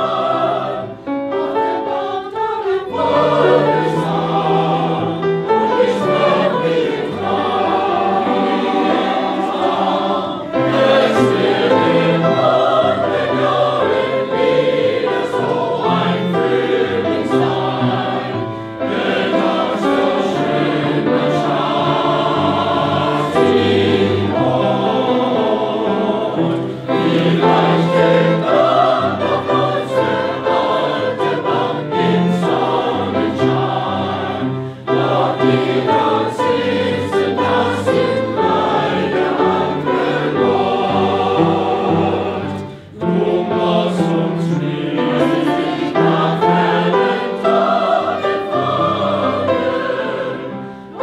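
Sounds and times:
choir singing in harmony: 0.0 - 51.0
piano accompaniment: 0.0 - 51.0.

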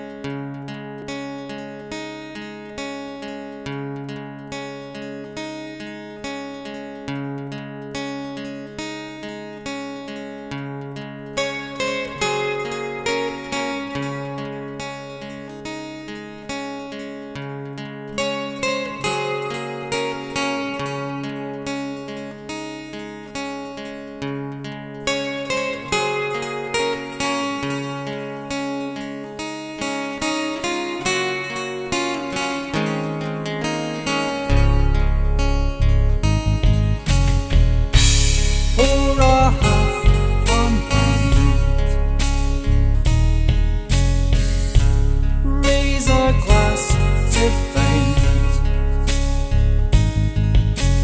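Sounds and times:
acoustic guitar plucked notes: 0.0 - 51.0
deep bass: 34.5 - 51.0.

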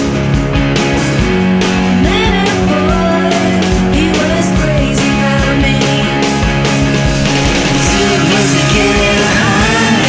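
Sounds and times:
rock band instrumental: 0.0 - 10.0.

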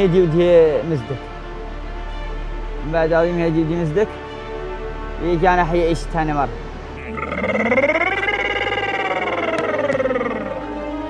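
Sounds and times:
man wailing: 7.0 - 10.8.

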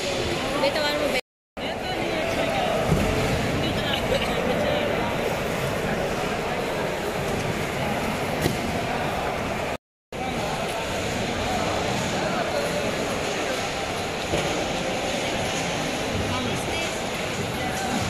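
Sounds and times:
indistinct chatter: 0.0 - 18.0
steady background noise: 0.0 - 18.0.

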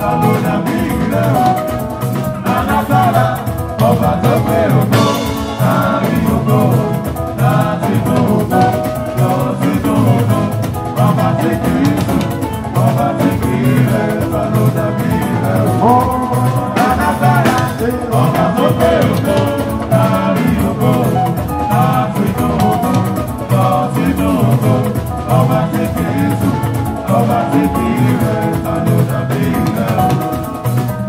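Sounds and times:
drum kit beat: 0.0 - 31.0
live band music: 0.0 - 31.0
person singing: 0.0 - 31.0.

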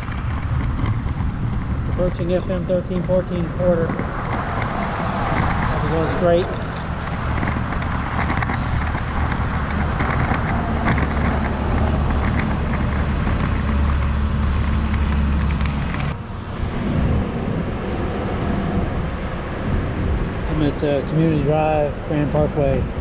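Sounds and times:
cars passing: 0.0 - 23.0
wind rumbling on microphone: 0.0 - 23.0.

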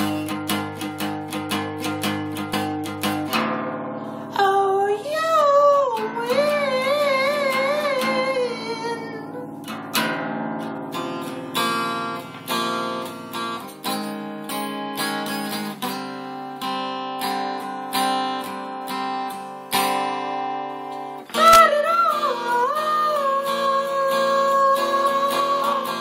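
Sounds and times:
acoustic guitar strumming: 0.0 - 26.0.

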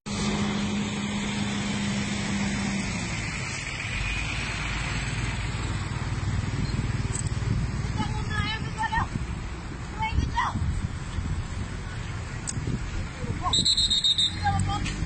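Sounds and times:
motor vehicle on road: 0.0 - 15.0.

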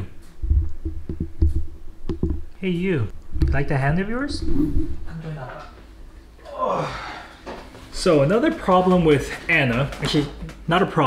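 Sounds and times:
faint steady hum: 0.0 - 8.4
dull low handling thumps: 0.3 - 5.1.

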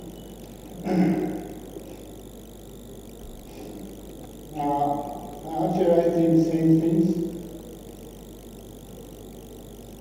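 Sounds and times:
steady low background noise: 0.0 - 10.0.

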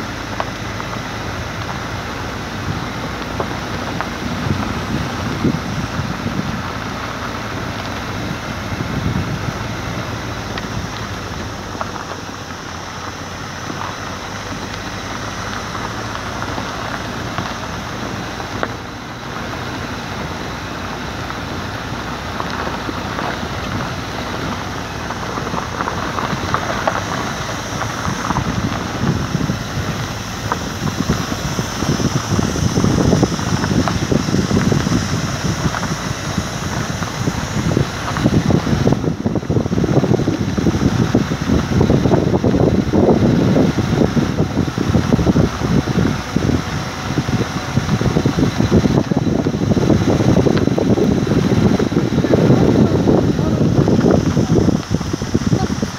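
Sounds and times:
vehicle road noise: 0.0 - 55.9
wind rushing over microphone: 0.0 - 55.9.

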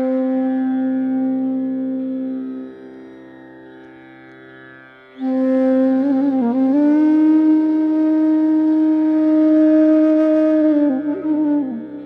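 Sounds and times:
bamboo flute long note: 0.0 - 3.0, 5.2 - 12.0.

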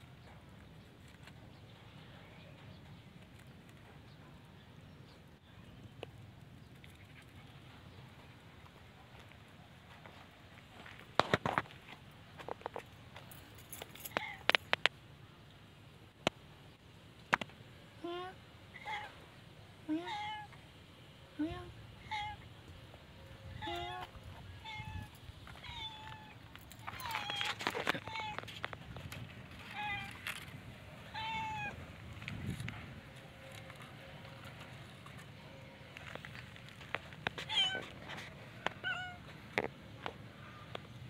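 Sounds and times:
cat meowing: 19.9 - 20.6, 23.6 - 28.4, 31.1 - 31.8, 38.7 - 39.2.

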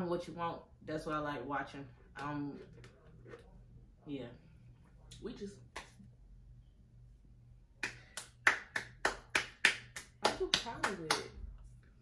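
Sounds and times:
hands clapping: 5.7 - 6.0, 7.8 - 11.3.

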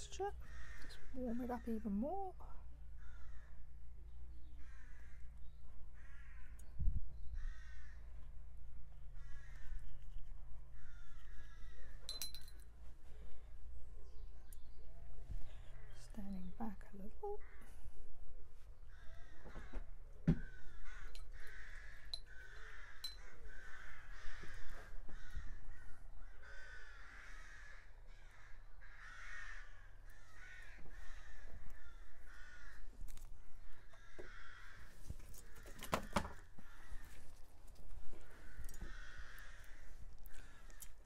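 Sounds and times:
crows cawing: 0.4 - 2.1, 2.9 - 3.8, 4.6 - 6.7, 7.4 - 8.3, 9.1 - 9.9, 10.7 - 12.2, 18.8 - 37.5, 38.1 - 41.0.

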